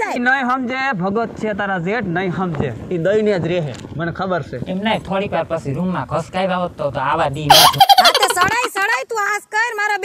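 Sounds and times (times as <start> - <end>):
high-pitched giggling laugh: 7.5 - 8.7.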